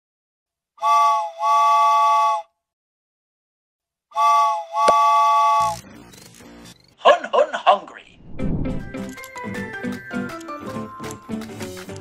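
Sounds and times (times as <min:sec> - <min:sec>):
steam locomotive whistle: 0:00.8 - 0:02.5, 0:04.1 - 0:05.7.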